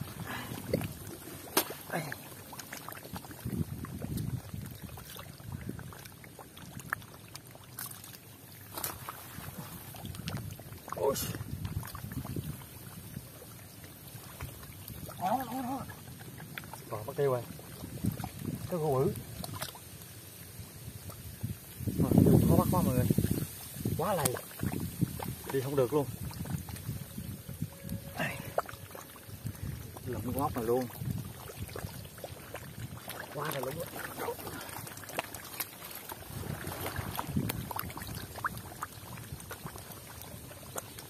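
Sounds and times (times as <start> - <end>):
sloshing and squelching in mud: 0.0 - 41.0
sharp smacks and splashes: 0.1 - 13.1, 14.1 - 20.0, 23.1 - 27.0, 30.0 - 41.0.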